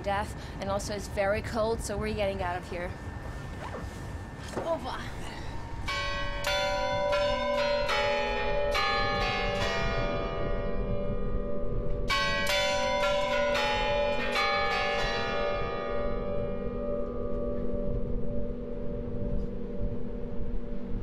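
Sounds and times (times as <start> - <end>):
chime bells playing a melody: 5.8 - 10.6.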